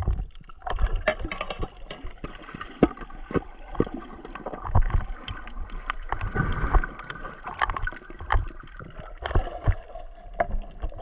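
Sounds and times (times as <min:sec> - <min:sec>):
muffled underwater water movement: 0:00.0 - 0:11.0.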